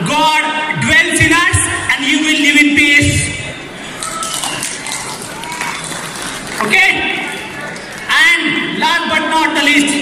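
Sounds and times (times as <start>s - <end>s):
man speaking over pa system: 0.0s - 3.6s, 6.6s - 7.5s, 8.1s - 10.0s.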